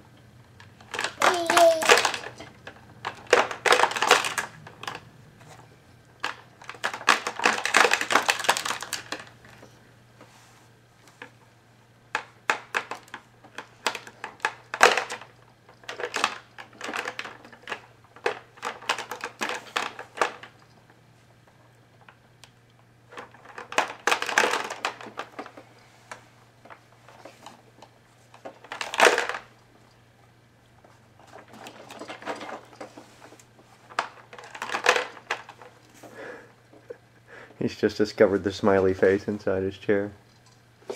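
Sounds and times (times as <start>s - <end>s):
plastic toys rattling and clicking: 0.5s - 5.6s, 6.2s - 9.8s, 12.1s - 30.0s, 30.8s - 37.0s.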